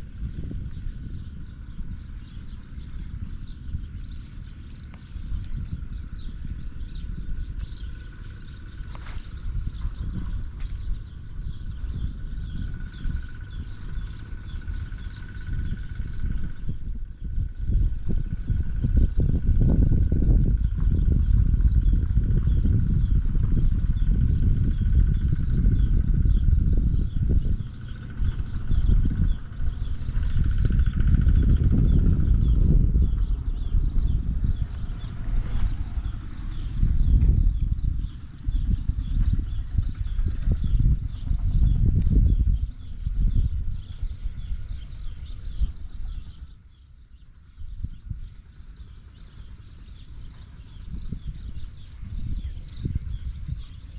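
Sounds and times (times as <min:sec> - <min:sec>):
faint chirping: 0:00.0 - 0:53.9
wind buffeting microphone: 0:00.0 - 0:53.9.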